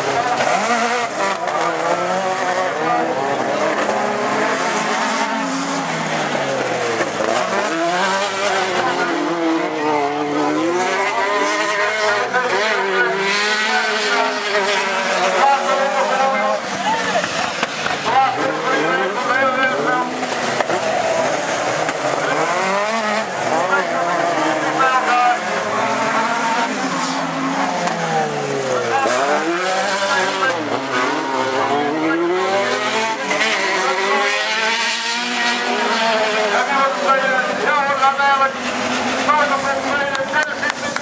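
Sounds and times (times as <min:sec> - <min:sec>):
race car engines revving: 0:00.0 - 0:41.0.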